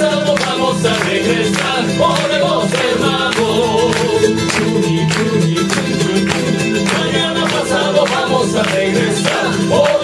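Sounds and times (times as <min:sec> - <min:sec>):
man singing: 0:00.0 - 0:10.0
strummed acoustic guitar and charango: 0:00.0 - 0:10.0.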